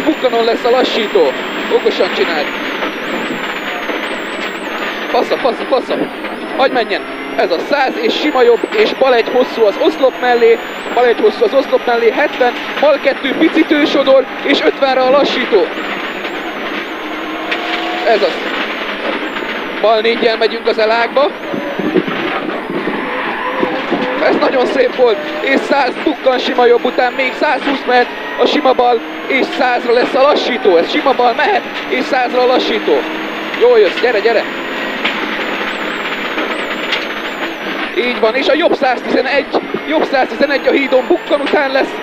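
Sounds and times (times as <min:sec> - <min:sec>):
car engine and tyre noise: 0:00.0 - 0:42.0.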